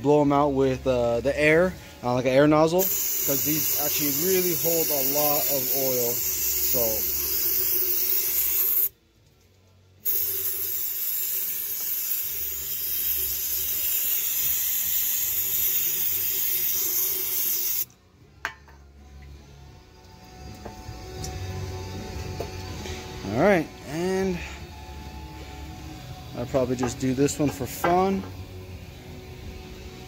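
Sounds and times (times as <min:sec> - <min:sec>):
aerosol cleaner spraying: 0:02.8 - 0:08.9, 0:10.0 - 0:17.9.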